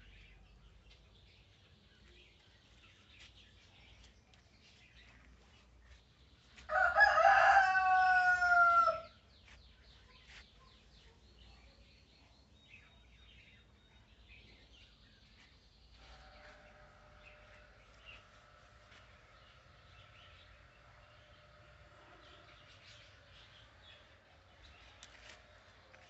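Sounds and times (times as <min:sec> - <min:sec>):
rooster crowing: 0:06.7 - 0:09.1.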